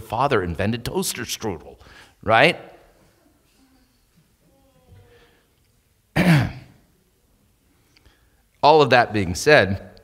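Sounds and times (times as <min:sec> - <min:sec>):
man clearing his throat: 0:06.2 - 0:06.8.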